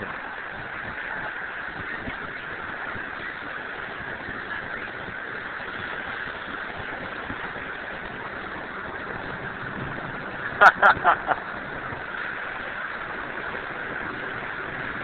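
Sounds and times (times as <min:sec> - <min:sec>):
steady outdoor rushing noise: 0:00.0 - 0:15.0.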